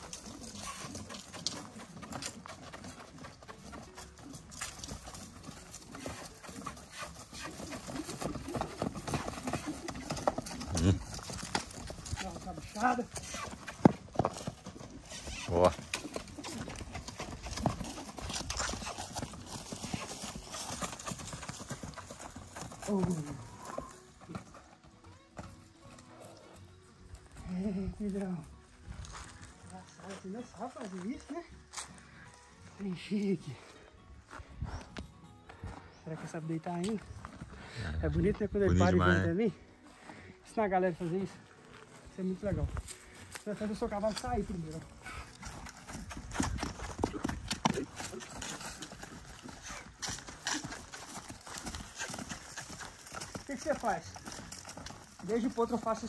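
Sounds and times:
horse hoofbeats on dirt: 0.0 - 56.0.

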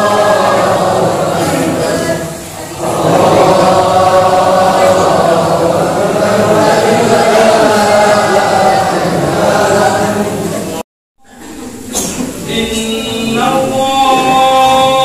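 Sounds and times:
men chanting in unison: 0.0 - 10.8, 12.4 - 15.0.

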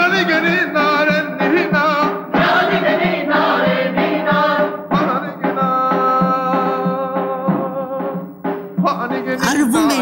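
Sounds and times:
drum beat: 0.0 - 10.0
group of voices singing: 1.4 - 7.6.

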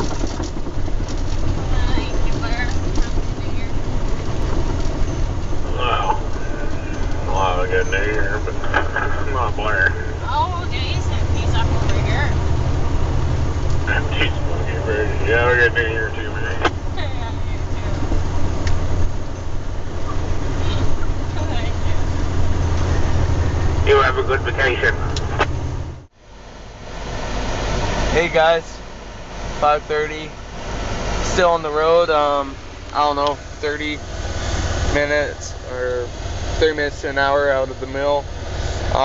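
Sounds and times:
diesel truck engine drone: 0.0 - 39.0
road noise: 0.0 - 39.0.

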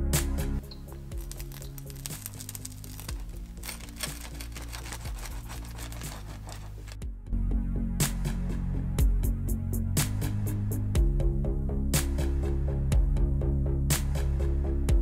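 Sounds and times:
background music: 0.0 - 15.0
pizza wheel crunching crust: 0.6 - 7.0.

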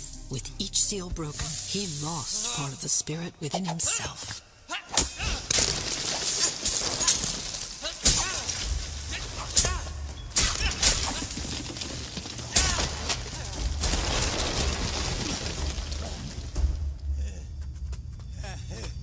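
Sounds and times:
sharp cracking shattering crashes: 5.0 - 17.0.

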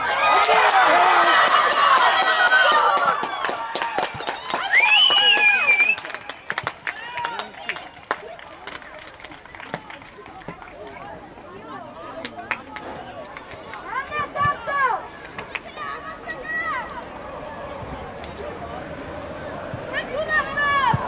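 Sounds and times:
people shouting and cheering: 0.0 - 21.0.

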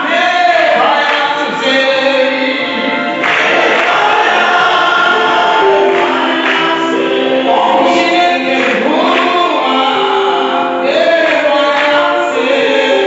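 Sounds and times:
congregation singing a hymn: 0.0 - 13.0
person singing into a microphone: 0.0 - 13.0.

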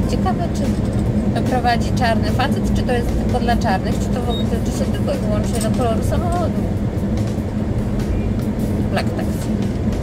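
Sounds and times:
car cabin road and engine drone: 0.0 - 10.0.

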